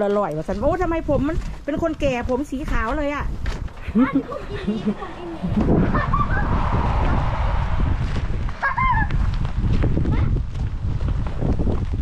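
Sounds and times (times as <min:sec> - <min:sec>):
steady low rumble: 0:03.2 - 0:11.7.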